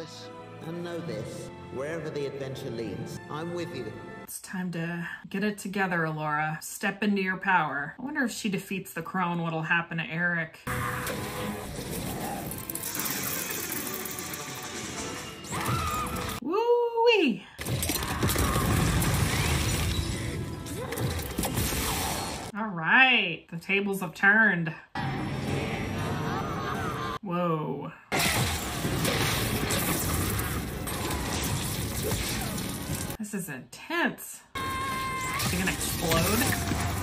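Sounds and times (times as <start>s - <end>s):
crashing magic energy blast: 28.2s - 33.2s.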